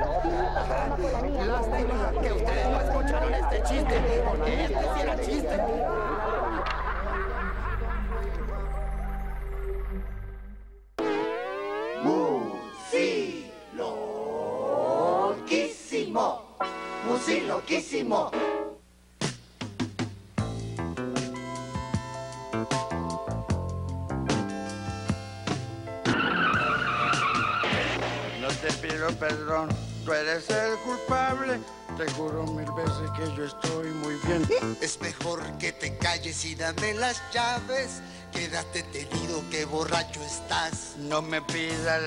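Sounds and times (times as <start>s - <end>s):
people laughing: 0.0s - 8.7s, 34.3s - 34.9s
music: 0.0s - 13.7s, 16.6s - 42.0s
car tyres screeching: 26.1s - 28.4s.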